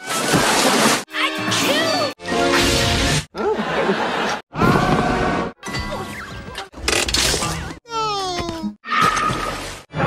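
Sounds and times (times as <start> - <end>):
animated film music: 1.0 - 3.8, 4.5 - 10.0.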